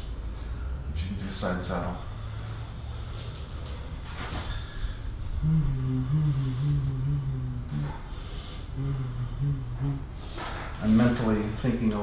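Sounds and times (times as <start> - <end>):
man humming low: 4.9 - 10.8.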